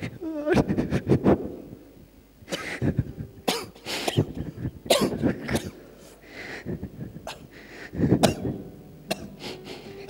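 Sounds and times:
man coughing: 0:02.5 - 0:06.2, 0:07.2 - 0:07.5, 0:08.2 - 0:09.4.

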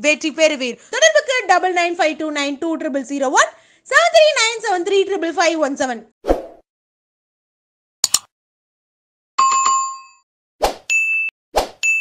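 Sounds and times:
sharp click: 0:08.0 - 0:08.3.

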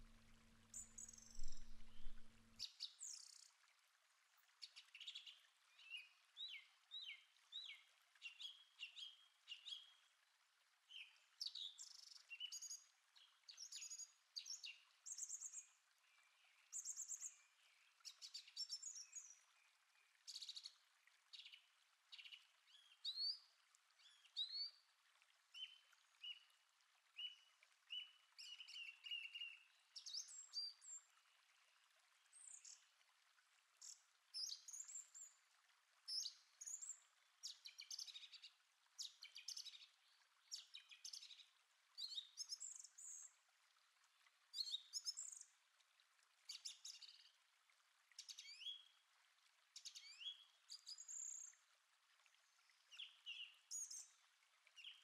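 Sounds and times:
small birds chirping: 0:00.7 - 0:03.5.

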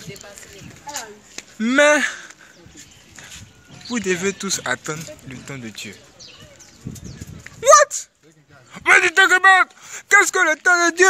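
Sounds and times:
man speaking loudly: 0:01.6 - 0:02.2, 0:07.6 - 0:11.0.

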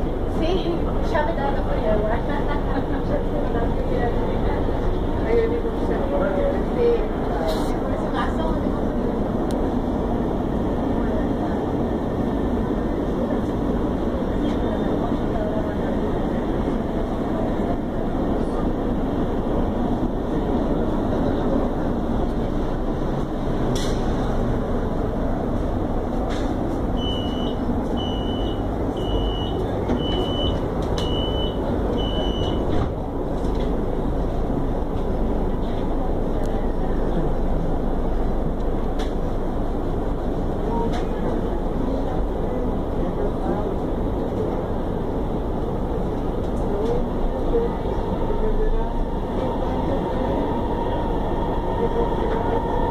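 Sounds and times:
train interior rumble: 0:00.0 - 0:52.9.

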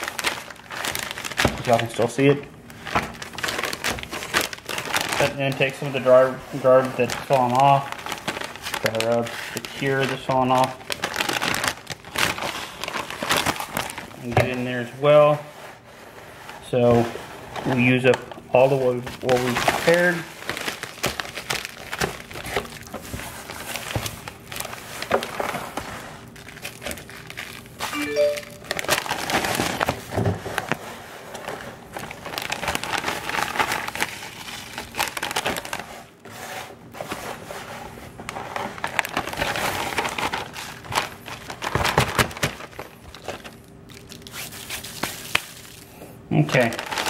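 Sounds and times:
plastic bag crinkling: 0:00.0 - 0:15.9, 0:17.6 - 0:36.2, 0:38.0 - 0:47.0.

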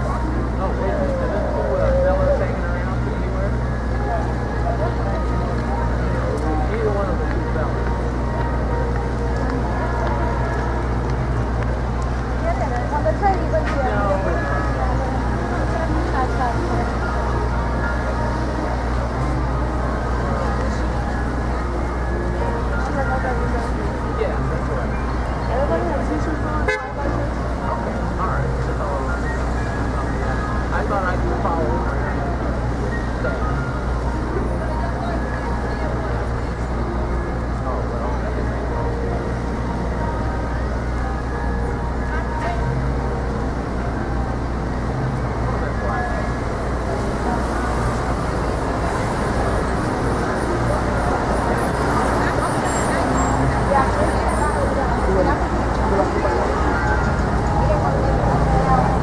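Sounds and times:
cars and trucks passing: 0:00.0 - 0:59.0
murmur of pedestrians' voices: 0:00.0 - 0:59.0
car horn toot: 0:26.6 - 0:27.0.

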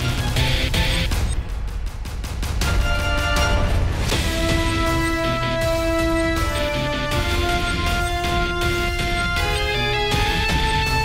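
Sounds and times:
music with deep bass and drums: 0:00.0 - 0:11.0.

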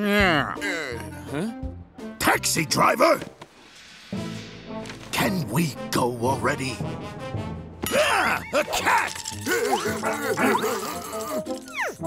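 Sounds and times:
cartoon background music: 0:00.0 - 0:03.4, 0:04.1 - 0:12.0
cartoon dog yapping barks: 0:09.7 - 0:10.9.

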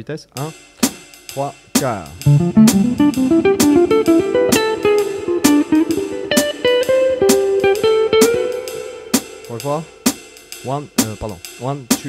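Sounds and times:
electric guitar jazz line: 0:02.1 - 0:10.3
metronome click: 0:02.2 - 0:07.4.

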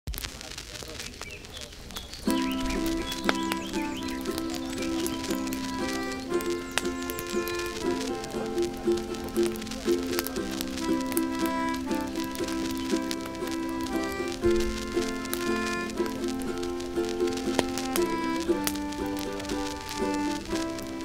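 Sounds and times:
crackling clicks: 0:00.1 - 0:21.0
concertina playing blues: 0:01.7 - 0:21.0.

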